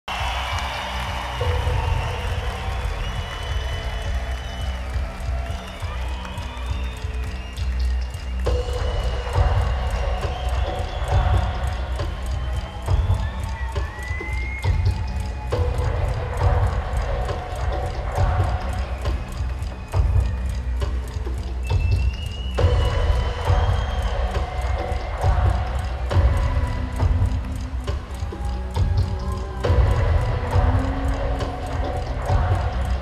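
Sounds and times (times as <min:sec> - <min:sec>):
crowd noise: 0:00.0 - 0:33.0
live concert music with pulsing bass: 0:00.1 - 0:33.0
high ticks: 0:00.2 - 0:33.0.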